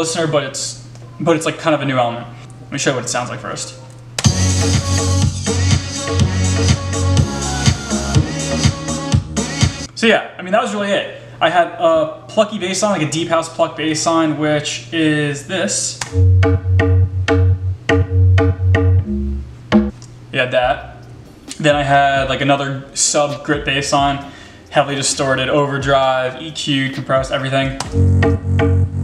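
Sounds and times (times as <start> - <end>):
electronic dance music: 4.2 - 9.9, 27.2 - 29.0
plucked bass synth pattern: 16.1 - 19.9, 27.8 - 29.0
strong low bass: 16.2 - 20.0, 27.9 - 29.0.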